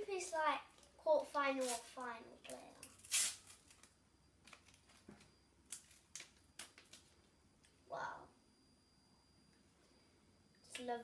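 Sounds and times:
paper packet tearing: 0:03.0 - 0:03.9.

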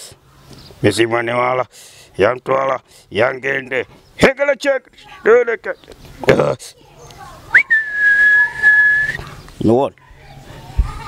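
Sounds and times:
person whistling: 0:07.5 - 0:09.2.

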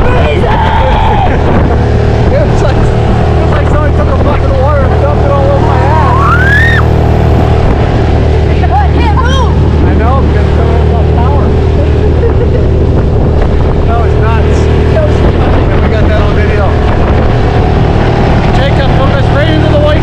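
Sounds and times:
voices calling out: 0:00.0 - 0:04.0, 0:04.8 - 0:13.2
outboard motor droning: 0:00.0 - 0:20.0.

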